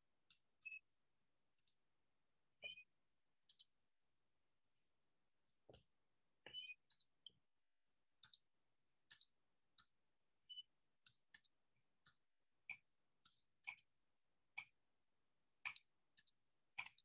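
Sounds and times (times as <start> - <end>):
faint irregular clicks: 0.2 - 0.8, 1.5 - 1.8, 3.4 - 3.8, 5.4 - 7.4, 8.2 - 13.9, 14.5 - 14.8, 15.6 - 17.0.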